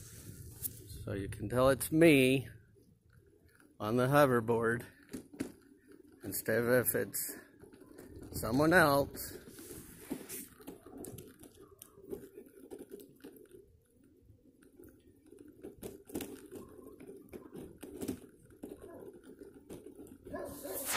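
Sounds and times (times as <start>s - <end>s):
wheels rolling over asphalt: 0.0s - 20.9s
clicks and crackles: 7.6s - 20.9s.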